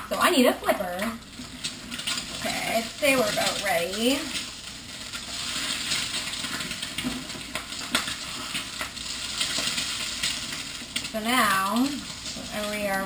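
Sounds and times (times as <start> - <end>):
eggs sizzling in a pan: 0.0 - 13.0.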